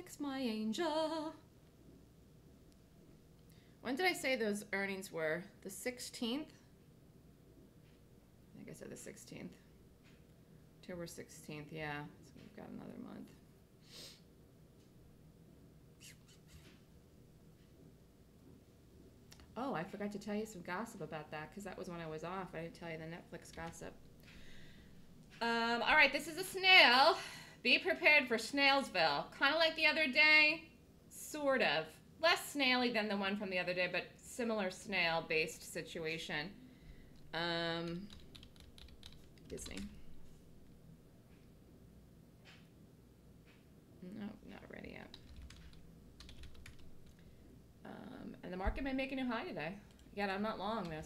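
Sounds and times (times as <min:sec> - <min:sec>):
faint short hisses: 0:13.8 - 0:14.3
computer keyboard typing: 0:37.8 - 0:40.0, 0:45.1 - 0:47.2.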